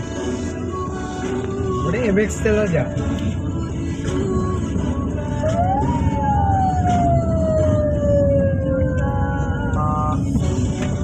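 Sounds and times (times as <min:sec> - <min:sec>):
steady low rumble: 0:00.0 - 0:11.0
siren-like wail: 0:05.4 - 0:09.8.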